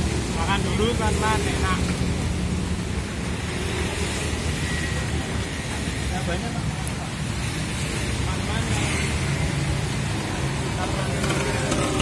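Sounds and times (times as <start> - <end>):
low traffic rumble: 0.0 - 12.0
tyres hissing on wet road: 0.0 - 12.0.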